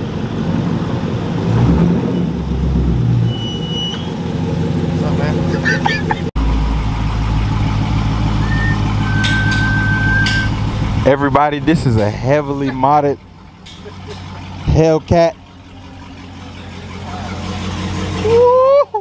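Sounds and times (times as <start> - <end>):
car engine idling: 0.0 - 1.5, 3.6 - 19.0
deep engine drone: 0.0 - 19.0.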